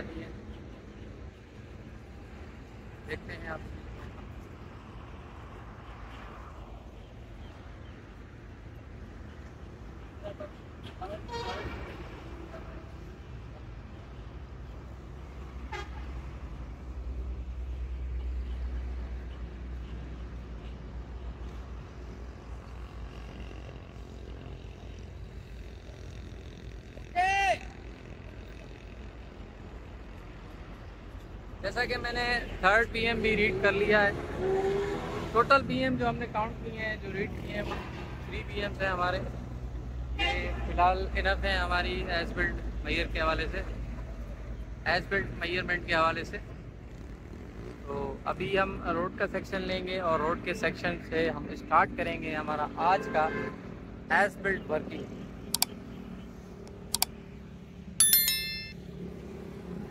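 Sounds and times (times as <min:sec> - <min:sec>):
mouse click: 0:56.9 - 0:57.1
bright bell chime: 0:58.0 - 0:58.9.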